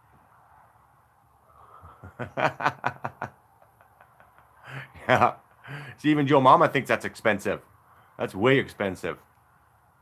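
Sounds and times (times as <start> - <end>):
man laughing: 1.6 - 6.0.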